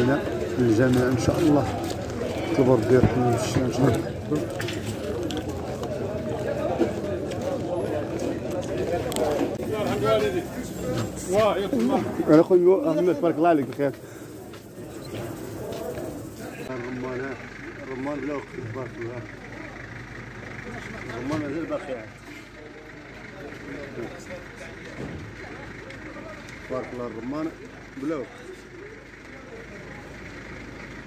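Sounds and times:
murmur of voices: 0.0 - 31.0.

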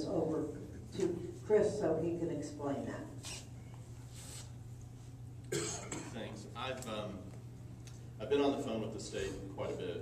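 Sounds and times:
steady low hum: 0.0 - 10.0
person coughing: 5.5 - 6.3.

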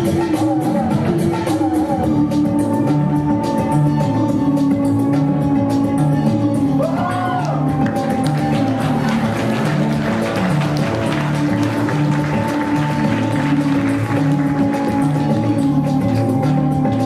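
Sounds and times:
music with repeating bass: 0.0 - 17.0.

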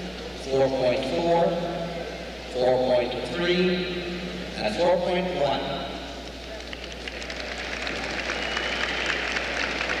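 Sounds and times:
crowd applauding: 6.5 - 10.0.

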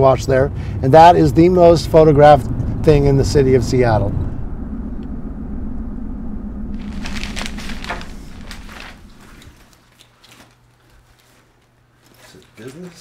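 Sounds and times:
car driving rumble: 0.0 - 9.7
crackling and crinkling: 6.8 - 13.0
hands rummaging in canvas bag: 6.8 - 13.0.

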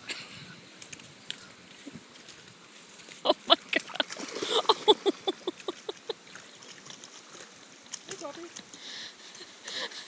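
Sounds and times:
river water trickling: 0.5 - 10.0.

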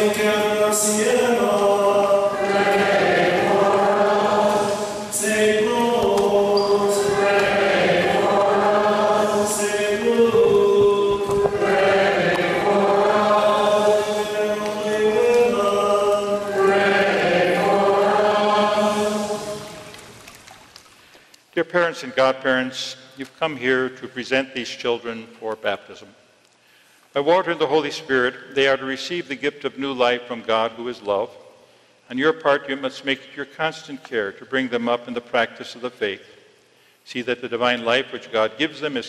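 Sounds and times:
choir and congregation chanting: 0.0 - 20.2.

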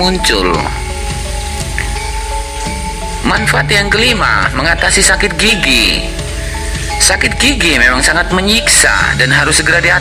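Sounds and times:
music with held notes: 0.0 - 10.0.

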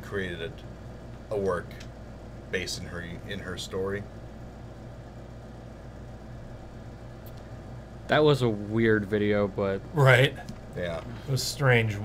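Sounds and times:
low room tone hum: 0.0 - 12.0.

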